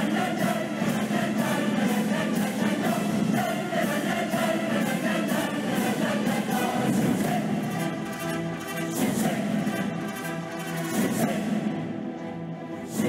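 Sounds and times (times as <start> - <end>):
choir singing: 0.0 - 13.0
symphony orchestra: 0.0 - 13.0.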